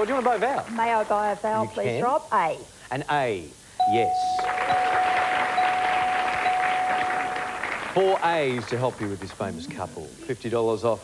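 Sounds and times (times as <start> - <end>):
audience applause: 0.0 - 1.1, 4.4 - 9.5
puzzle board bell chime: 3.8 - 7.6.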